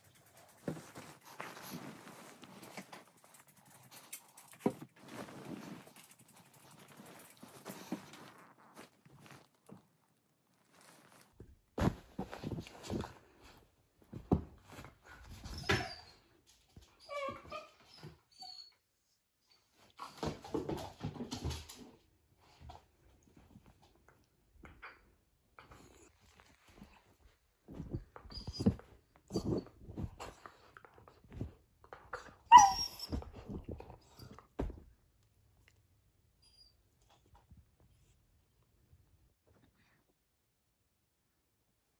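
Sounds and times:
puppy paws pattering on floor: 0.0s - 18.2s, 25.6s - 35.0s
puppy thumping and rustling toy: 0.4s - 3.0s, 11.4s - 15.8s, 32.6s - 34.9s.

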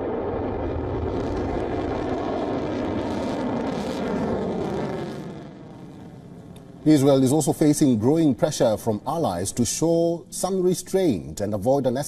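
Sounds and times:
rocket motor low rumble: 0.0s - 9.2s.

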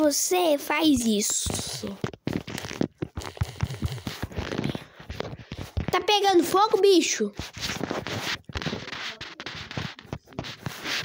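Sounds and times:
fingers tapping touchscreen: 0.6s - 6.2s, 7.4s - 11.0s
rustly handling noise: 0.8s - 11.0s.

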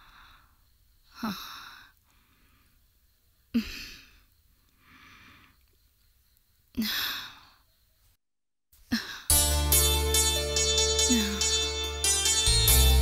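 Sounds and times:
woman sighing heavily: 11.1s - 11.4s.

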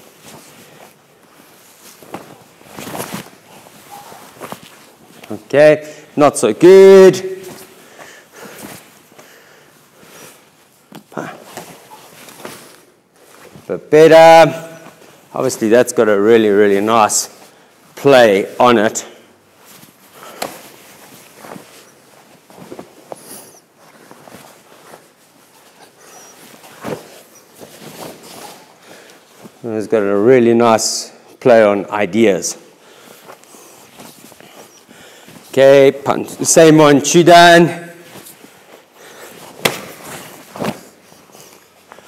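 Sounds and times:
bare feet on foam mat: 0.0s - 29.7s, 32.5s - 42.0s
uniforms rustling: 0.0s - 42.0s
arms and sleeves striking: 20.3s - 21.8s, 39.4s - 41.0s
soft thuds of contact: 39.6s - 40.9s.

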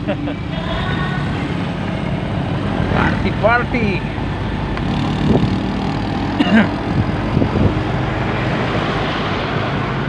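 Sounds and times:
car engine running: 0.0s - 8.6s
road noise while driving: 0.0s - 10.0s.

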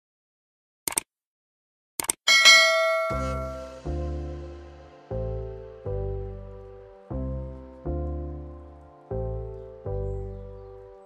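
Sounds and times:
notification bell chime: 2.3s - 3.9s.

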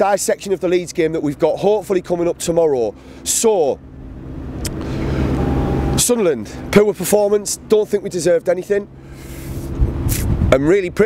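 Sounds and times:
vehicle engine running: 0.0s - 11.0s
short click: 4.6s - 4.9s.

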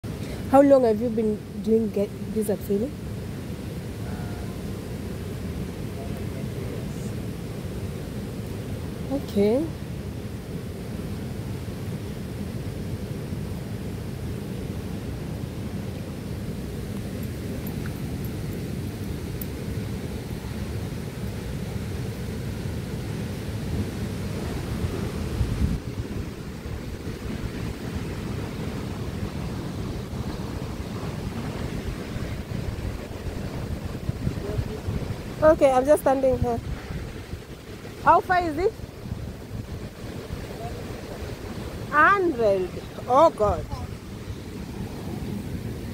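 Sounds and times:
wind buffeting microphone: 0.4s - 45.9s.

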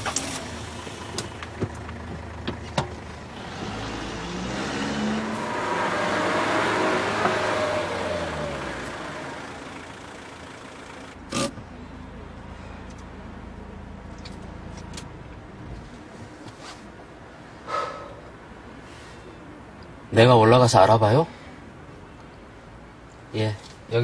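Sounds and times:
van driving past: 0.0s - 14.6s.

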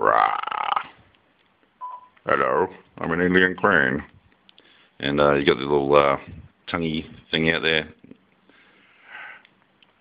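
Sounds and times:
person sniffing: 8.6s - 9.5s.

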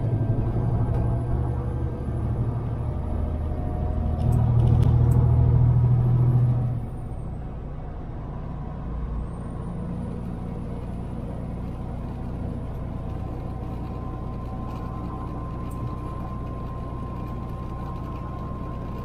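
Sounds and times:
road noise: 0.0s - 19.0s
truck diesel engine droning: 0.0s - 19.0s.

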